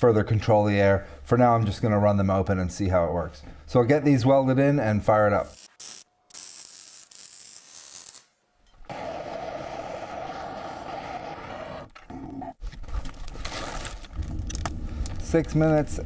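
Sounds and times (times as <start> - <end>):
electric arc welding crackle: 5.4 - 8.4.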